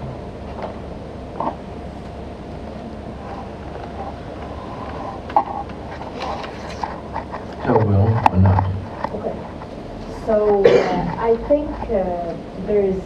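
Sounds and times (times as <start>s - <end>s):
murmured voice utterances: 7.6s - 8.8s.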